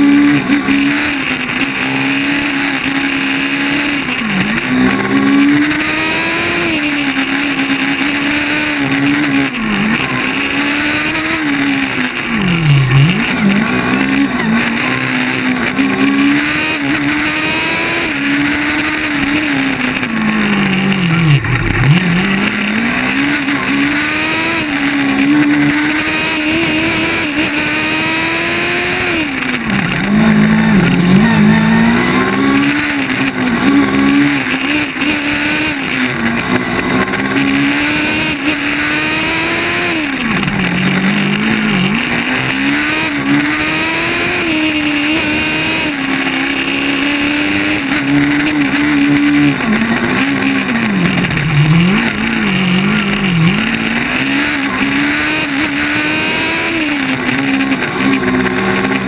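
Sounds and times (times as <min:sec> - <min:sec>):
race car engine revving: 0:00.0 - 0:59.0.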